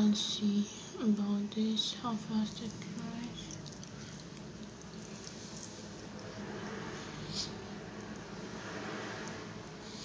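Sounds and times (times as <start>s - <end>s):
fingertips patting wet sheet mask: 2.4s - 9.9s.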